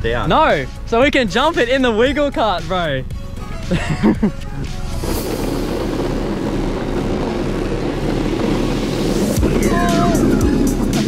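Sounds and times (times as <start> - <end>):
plastic wheels rolling on asphalt: 4.8 - 11.0
person shouting: 9.5 - 10.5.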